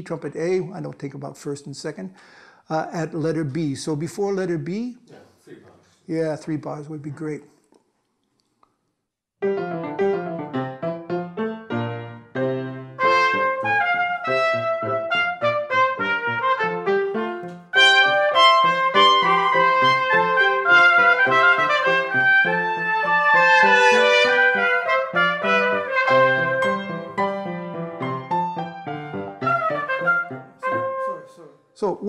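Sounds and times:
piano accompaniment: 9.4 - 31.5
trumpet duet: 12.6 - 27.6, 28.8 - 31.5.

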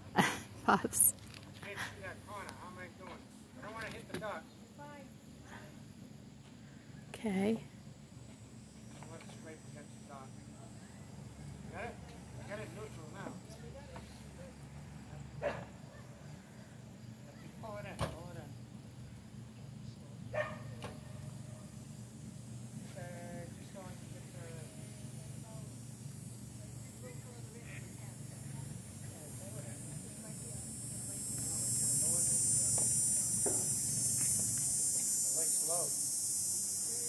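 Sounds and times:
faint distant voices: 8.9 - 35.9
high-pitched insect buzz: 22.8 - 37.0.

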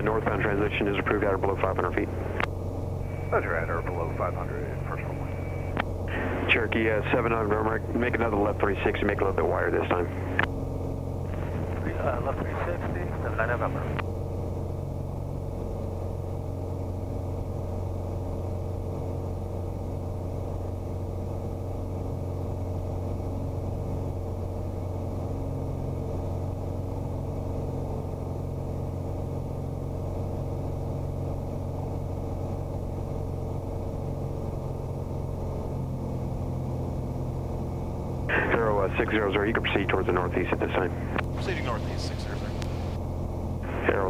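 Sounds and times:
propeller plane engine droning: 0.0 - 44.0.

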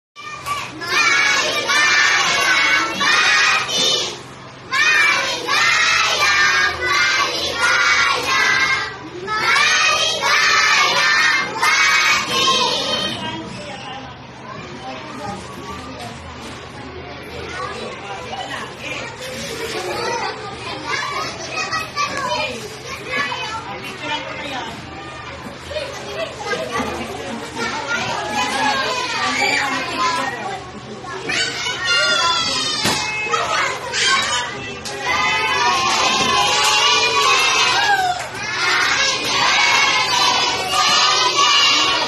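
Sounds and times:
children talking and calling out: 0.2 - 42.0.

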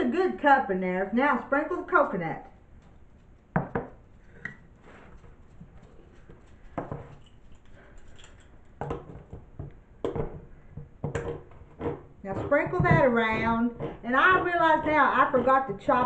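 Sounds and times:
utensils knocking and clicking: 6.8 - 16.0.

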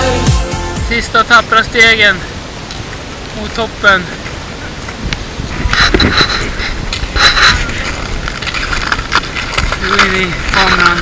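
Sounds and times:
wind rumbling on microphone: 1.1 - 11.0.

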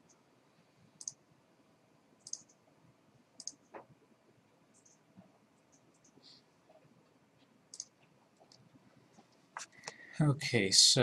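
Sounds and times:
computer mouse clicks: 1.0 - 1.2, 2.2 - 2.6, 3.4 - 3.9, 4.7 - 5.0, 5.6 - 6.2, 7.7 - 8.6.

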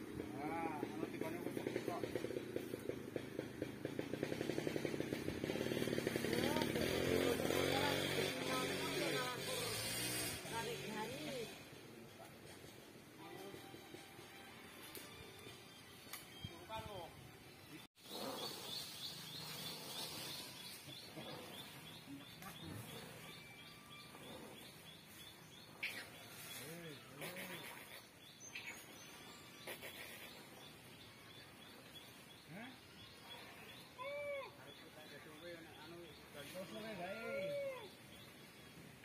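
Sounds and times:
chainsaw engine idling: 0.0 - 11.8
voices calling out: 0.0 - 17.1, 17.7 - 39.0
faint outdoor background noise: 0.0 - 39.0
bird chirping: 16.1 - 39.0.

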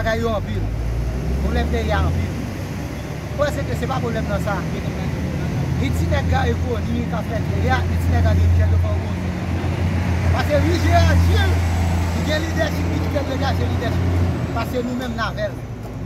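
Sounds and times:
low traffic rumble: 0.0 - 16.0
men talking: 0.0 - 16.0.

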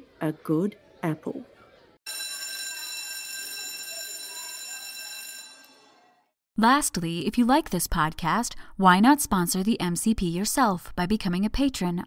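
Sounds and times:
shrill ringing tones: 2.1 - 6.2.

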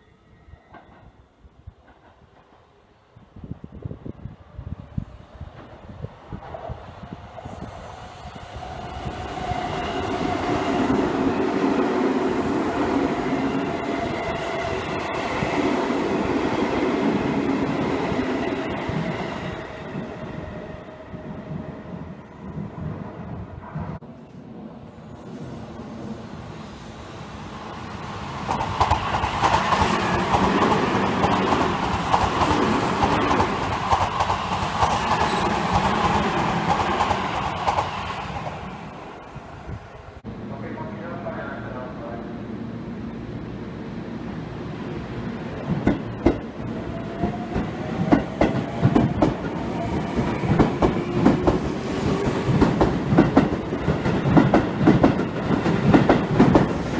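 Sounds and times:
rail clatter: 45.6 - 56.9.

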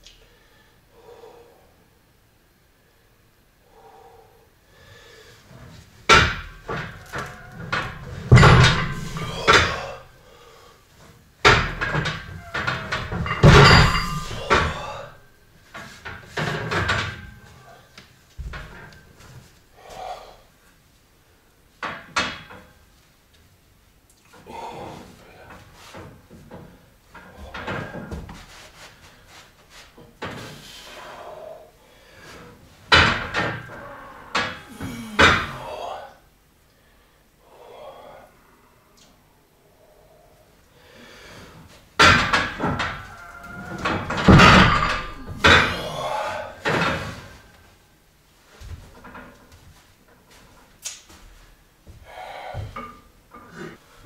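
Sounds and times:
barbell clanking against rack: 6.1 - 10.0, 11.5 - 15.2, 43.7 - 47.2.

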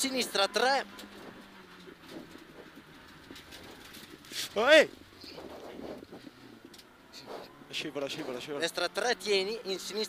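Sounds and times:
muffled car engine drone: 0.0 - 10.0
road noise: 0.0 - 10.0
faint rattles: 0.6 - 7.3.

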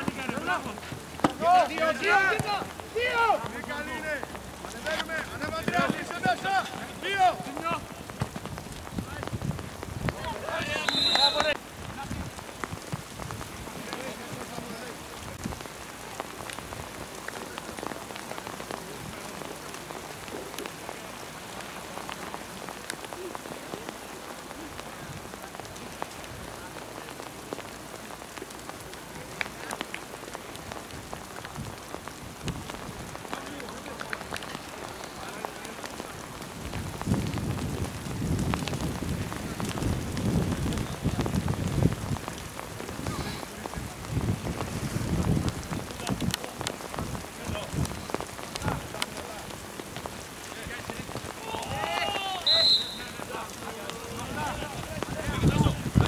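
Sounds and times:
crackling hiss: 0.0 - 56.0.

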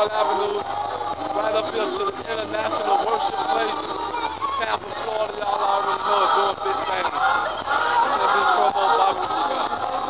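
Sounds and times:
backing music: 0.0 - 10.0
man singing with autotune: 0.0 - 10.0.

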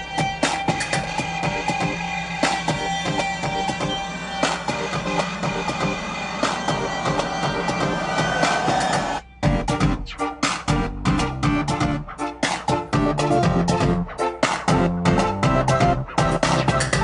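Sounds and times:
song demo with beat and held tones: 0.0 - 17.0.

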